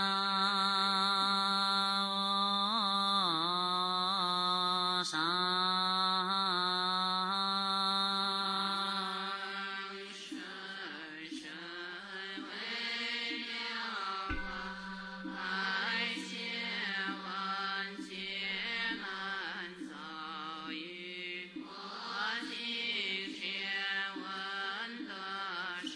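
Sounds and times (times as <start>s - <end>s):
slow liturgical chanting: 0.0s - 25.9s.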